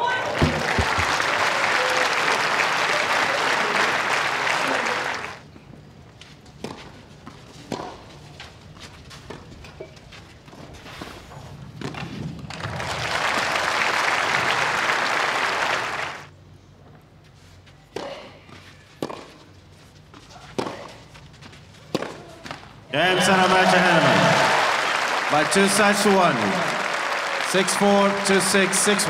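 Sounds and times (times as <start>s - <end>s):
crowd applauding: 0.0s - 5.4s, 12.5s - 16.3s, 23.0s - 29.0s
rackets hitting tennis balls: 0.3s - 1.3s, 7.6s - 8.1s, 17.9s - 19.5s, 20.1s - 21.1s, 21.8s - 23.7s.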